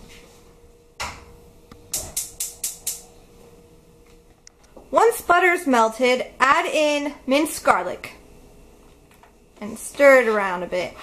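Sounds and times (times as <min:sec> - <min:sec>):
gas burner igniter clicking: 0:01.9 - 0:03.1.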